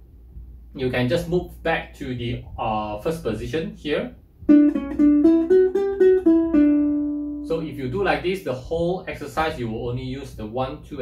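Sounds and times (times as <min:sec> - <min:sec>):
ukulele playing a scale: 0:04.4 - 0:07.9.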